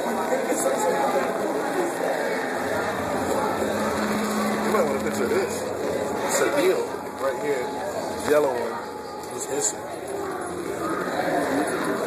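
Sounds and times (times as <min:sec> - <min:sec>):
people talking indistinctly: 0:00.0 - 0:12.0
low steady hum: 0:01.2 - 0:12.0.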